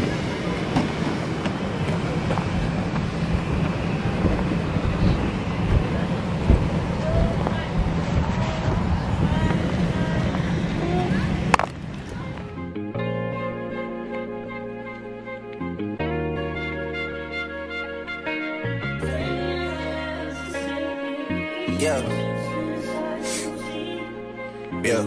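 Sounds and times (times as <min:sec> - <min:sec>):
wind buffeting microphone: 0:00.0 - 0:12.7.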